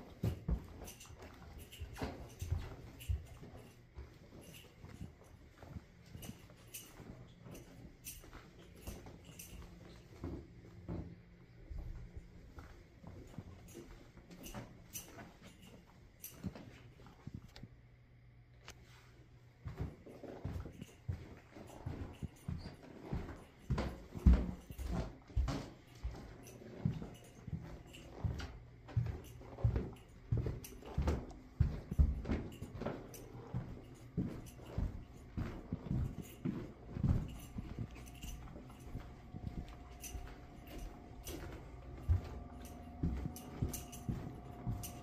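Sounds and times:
footsteps on carpet: 0.0s - 17.6s, 18.6s - 45.0s.

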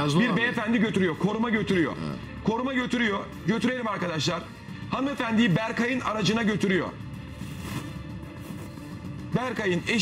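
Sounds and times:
background music with low notes: 0.0s - 10.0s.

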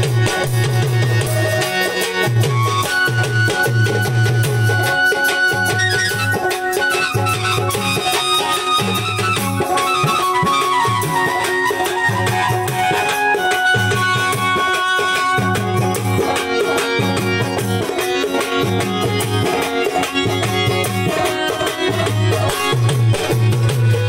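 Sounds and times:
folk keyboard music over loudspeaker: 0.0s - 24.0s.

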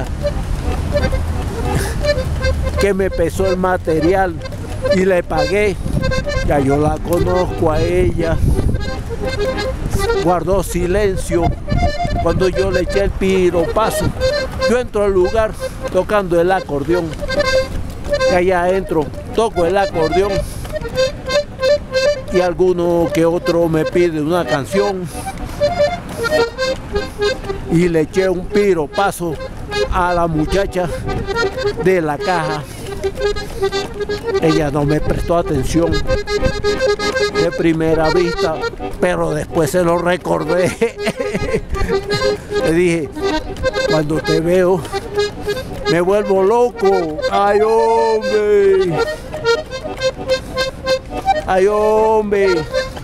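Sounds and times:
accordion playing notes: 0.0s - 53.0s
street traffic: 0.0s - 53.0s.

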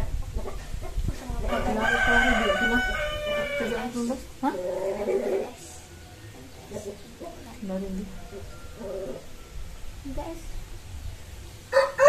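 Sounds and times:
rooster crowing: 1.5s - 4.0s, 8.0s - 9.8s, 11.7s - 12.0s.

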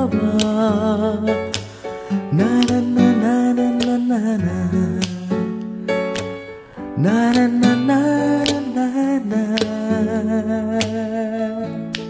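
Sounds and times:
sharp clicks or strums: 0.2s - 0.7s, 1.4s - 10.1s, 10.7s - 11.3s.

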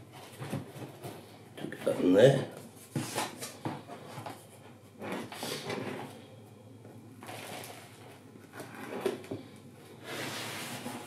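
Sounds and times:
plastic pots scraping and rustling: 3.0s - 6.2s, 7.2s - 11.0s.

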